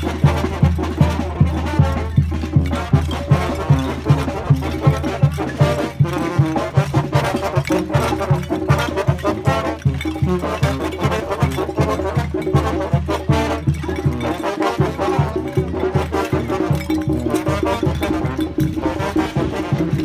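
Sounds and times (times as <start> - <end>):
brass band playing lively tune: 0.0 - 20.0
steady drum beat: 0.0 - 20.0.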